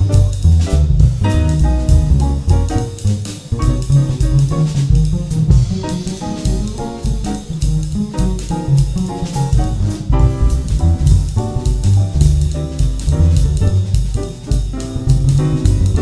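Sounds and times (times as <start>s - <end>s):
drum kit swung beat: 0.0s - 16.0s
piano: 0.0s - 16.0s
walking double bass: 0.0s - 16.0s.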